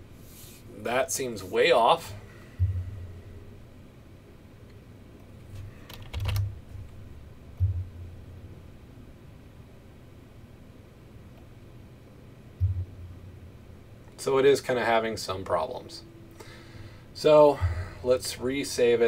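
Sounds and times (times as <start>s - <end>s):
dull low thuds: 2.1s - 3.7s, 6.5s - 8.6s, 12.5s - 13.8s, 17.6s - 18.0s
computer clicks: 5.9s - 6.5s.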